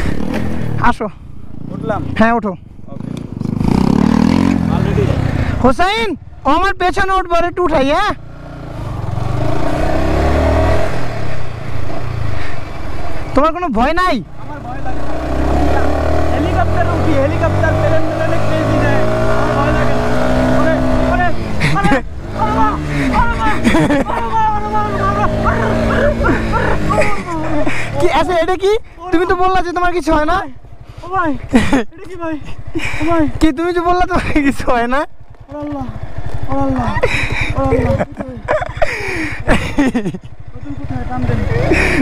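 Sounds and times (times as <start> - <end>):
voices: 0.0 - 11.6, 12.4 - 42.0
motorcycle engine revving: 0.0 - 42.0.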